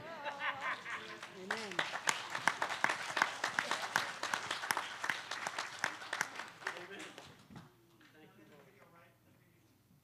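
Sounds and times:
people clapping: 0.3 - 7.4.

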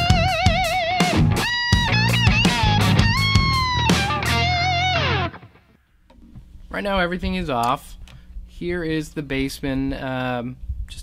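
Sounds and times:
overdriven electric guitar lead: 0.0 - 5.8.

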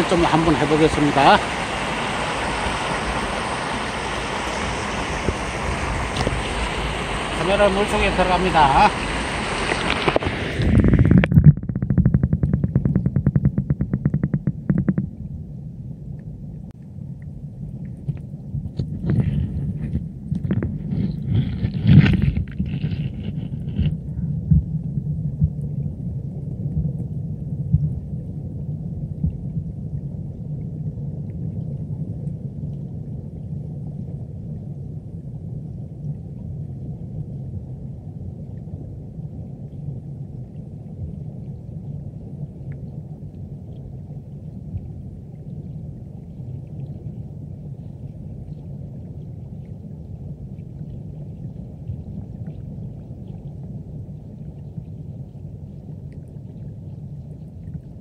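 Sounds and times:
muffled underwater stream rumble: 0.0 - 58.0.

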